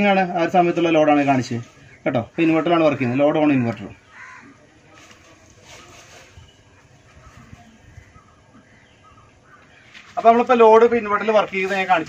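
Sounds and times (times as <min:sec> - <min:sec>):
man speaking: 0:00.0 - 0:04.0, 0:10.2 - 0:12.0
faint bird calls: 0:01.2 - 0:10.5.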